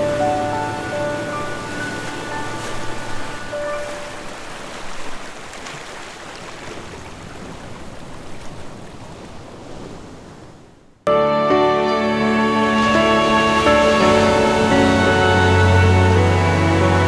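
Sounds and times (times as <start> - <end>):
ocean surf: 0.0 - 17.0
held music notes: 11.1 - 17.0.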